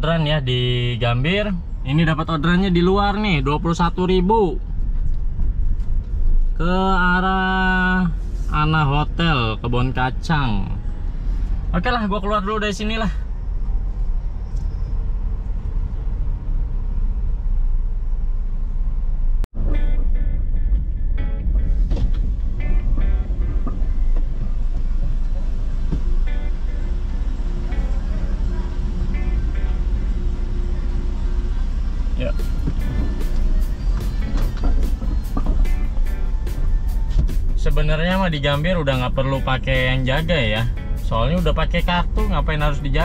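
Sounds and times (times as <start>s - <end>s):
car rumble inside cabin: 0.0s - 43.0s
background music: 32.3s - 43.0s.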